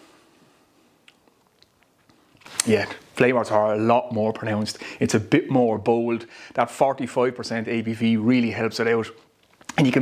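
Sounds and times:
wet lip and tongue clicks: 1.0s - 2.7s.

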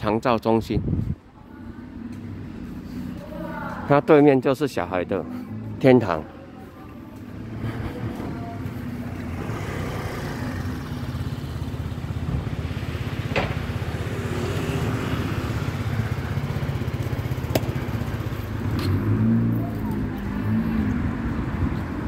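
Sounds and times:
vehicle engine running: 6.4s - 21.0s.

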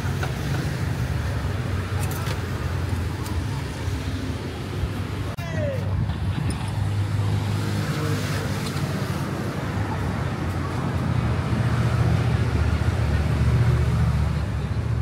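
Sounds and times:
low rumble of vehicle engines: 0.0s - 15.0s.

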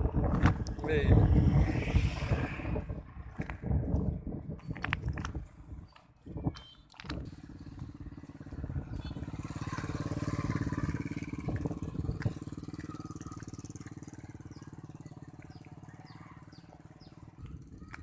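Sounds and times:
motorcycle engine passing: 7.1s - 18.0s.

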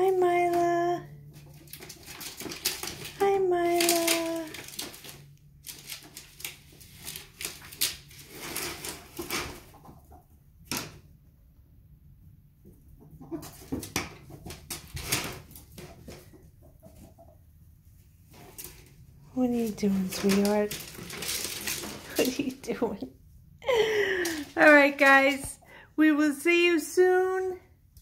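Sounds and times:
ferrets scurrying and scratching: 0.5s - 10.9s, 13.0s - 17.4s, 18.0s - 23.1s.

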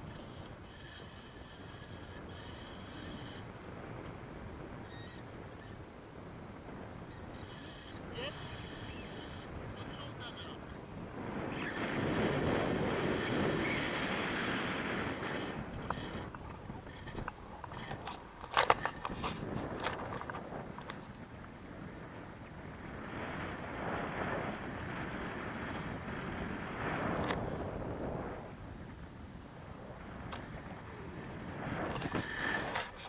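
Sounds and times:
wind rushing over microphone: 0.0s - 33.0s
crackles and knocks of buffeting: 11.1s - 23.0s, 29.9s - 33.0s.

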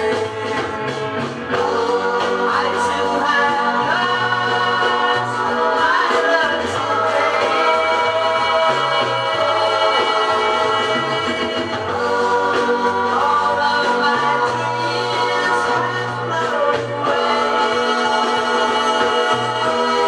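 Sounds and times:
pop song on a record player: 0.0s - 20.0s.

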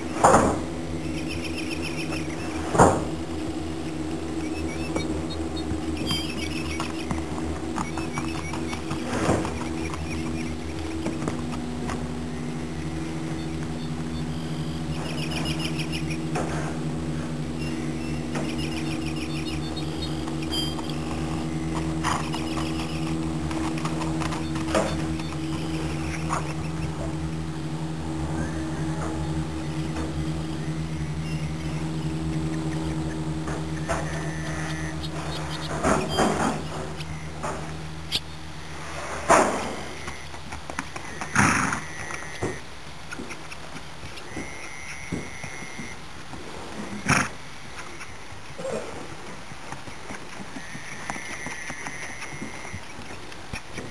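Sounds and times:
hoofbeats on dirt: 0.0s - 38.3s, 38.9s - 53.9s
birds chirping: 0.0s - 53.9s
steady low hum: 0.0s - 53.9s.

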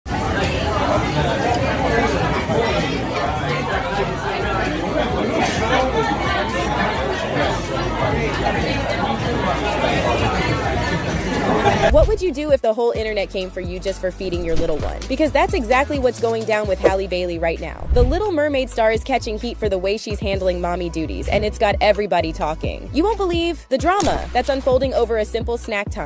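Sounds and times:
restaurant babble: 0.1s - 12.4s.

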